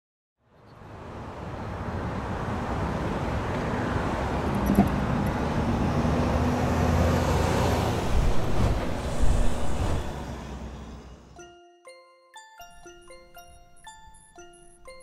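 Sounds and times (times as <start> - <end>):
road traffic rumble: 0.5 - 11.4.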